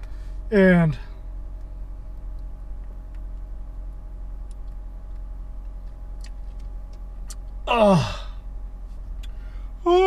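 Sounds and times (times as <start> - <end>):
car cabin hum: 0.0 - 10.0.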